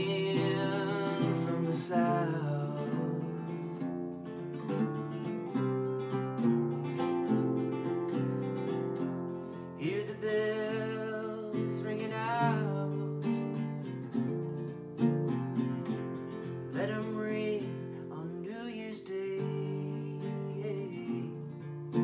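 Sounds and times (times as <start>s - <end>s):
man singing: 0.0s - 4.0s, 9.8s - 13.7s, 16.7s - 22.0s
acoustic guitar strumming: 0.0s - 22.0s.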